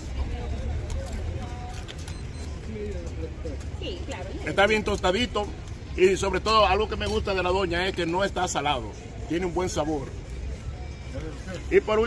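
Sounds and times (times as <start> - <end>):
faint voices: 0.0 - 12.0
traffic rumble: 0.0 - 12.0.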